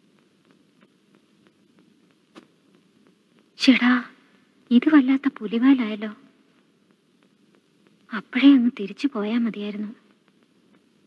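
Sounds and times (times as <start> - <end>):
faint ticks: 0.0 - 11.0.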